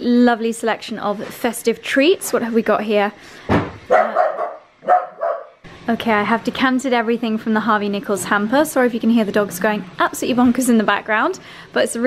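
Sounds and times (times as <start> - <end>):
dogs barking: 3.9 - 5.6.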